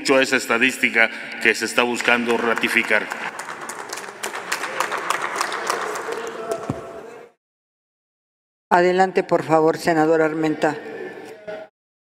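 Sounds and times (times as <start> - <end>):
people clapping: 1.4 - 7.1.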